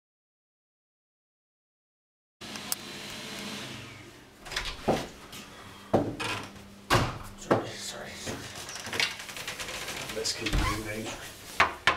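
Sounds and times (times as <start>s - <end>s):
clothes rustling: 8.3s - 11.6s.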